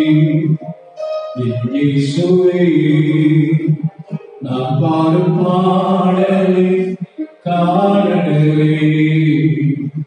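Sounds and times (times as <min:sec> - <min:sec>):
man singing into a microphone: 0:00.0 - 0:00.7, 0:01.4 - 0:10.0.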